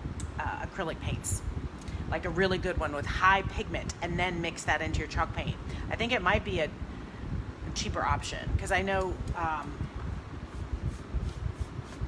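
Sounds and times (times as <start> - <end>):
paintbrush rubbing on wood: 10.5 - 12.0.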